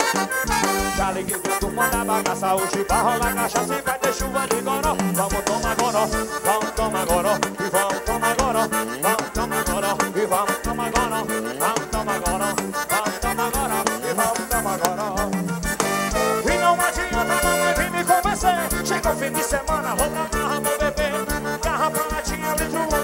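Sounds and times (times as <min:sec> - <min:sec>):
bass: 0:00.0 - 0:23.0
driving drum beat: 0:00.0 - 0:23.0
live band playing: 0:00.0 - 0:23.0
melody with bending notes: 0:00.0 - 0:23.0.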